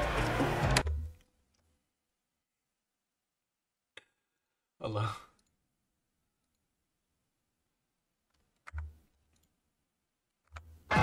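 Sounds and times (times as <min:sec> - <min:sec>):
background music: 0:00.0 - 0:01.2, 0:10.6 - 0:11.0.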